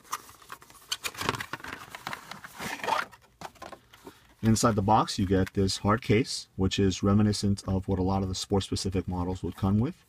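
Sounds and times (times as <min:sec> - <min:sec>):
packaging scraping and rustling: 0:00.0 - 0:03.8.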